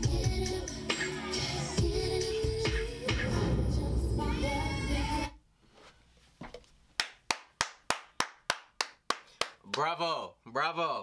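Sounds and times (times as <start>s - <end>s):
person clapping: 7.0s - 9.9s
man's voice: 9.7s - 11.0s.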